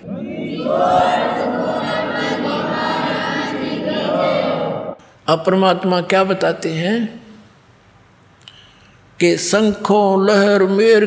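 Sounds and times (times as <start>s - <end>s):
congregation singing: 0.0s - 5.0s.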